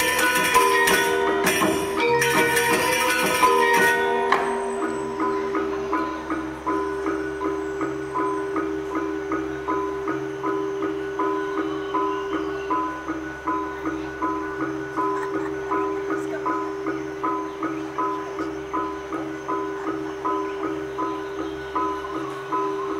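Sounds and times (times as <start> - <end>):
gamelan music: 0.0 - 22.9
sustained low ringing tones: 0.0 - 22.9.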